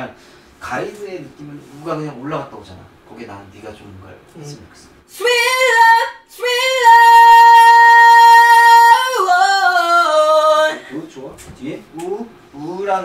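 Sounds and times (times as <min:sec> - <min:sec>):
person singing in high head voice: 0:05.1 - 0:10.8.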